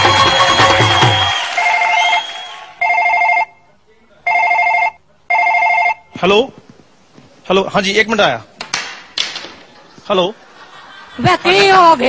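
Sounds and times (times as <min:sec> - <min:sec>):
electronic telephone ringing: 0:02.8 - 0:03.5, 0:04.3 - 0:06.1.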